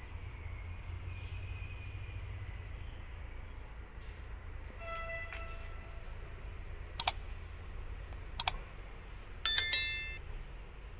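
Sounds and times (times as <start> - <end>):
low background hum: 0.0 - 10.9
bright bell ding: 9.5 - 10.2.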